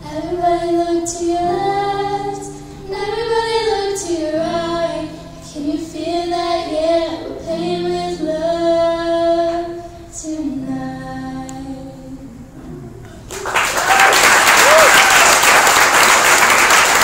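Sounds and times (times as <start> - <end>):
two women singing in harmony: 0.0 - 12.5.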